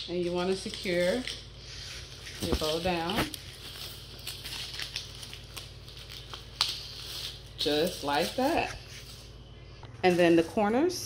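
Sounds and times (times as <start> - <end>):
tape being applied: 0.3 - 9.3
cellophane bag crinkling: 0.4 - 9.4.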